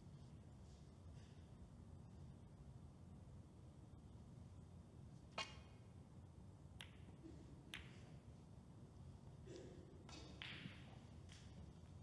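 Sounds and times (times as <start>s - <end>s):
balls clicking together: 6.8s - 8.0s.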